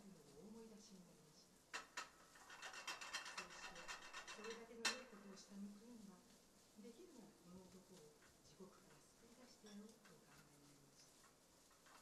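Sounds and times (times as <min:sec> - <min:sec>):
small rustling scrapes: 0:01.8 - 0:12.0.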